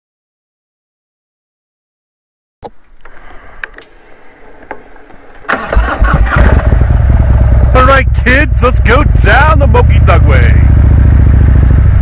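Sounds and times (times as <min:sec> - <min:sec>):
motorcycle engine starting and running: 0:05.3 - 0:12.0.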